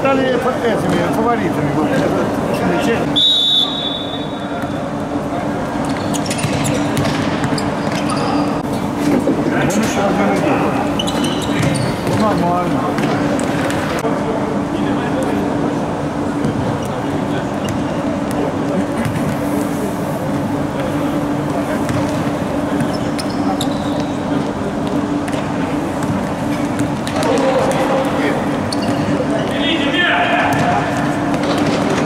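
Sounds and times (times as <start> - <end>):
steady low hum: 0.0 - 32.0
ball kicked and bouncing: 6.3 - 8.0.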